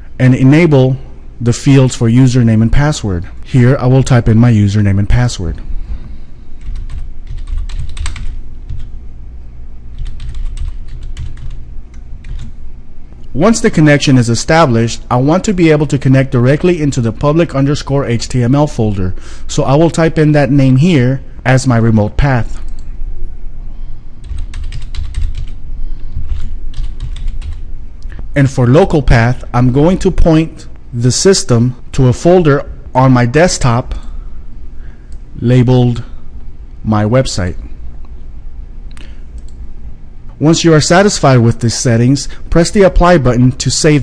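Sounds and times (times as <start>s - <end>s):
steady low hum: 0.0s - 44.0s
computer keyboard typing: 6.6s - 8.9s, 9.9s - 12.6s, 24.2s - 27.7s.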